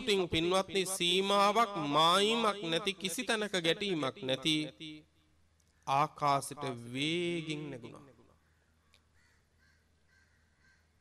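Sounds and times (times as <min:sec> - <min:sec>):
faint bird calls: 0:08.4 - 0:11.0.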